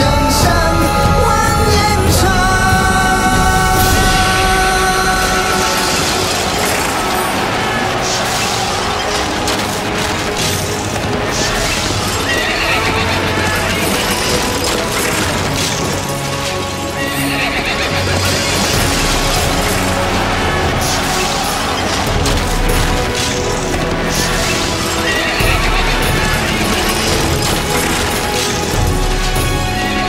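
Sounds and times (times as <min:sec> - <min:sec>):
hoofbeats: 0:00.0 - 0:30.0
song backing music: 0:00.0 - 0:30.0.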